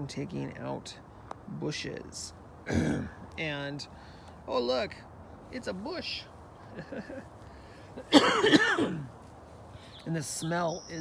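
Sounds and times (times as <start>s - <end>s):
man clearing his throat: 2.7s - 3.2s, 8.0s - 9.1s.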